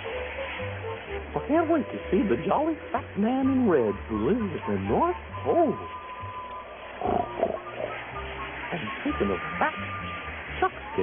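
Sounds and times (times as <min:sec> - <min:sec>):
soft background music: 0:00.0 - 0:11.0.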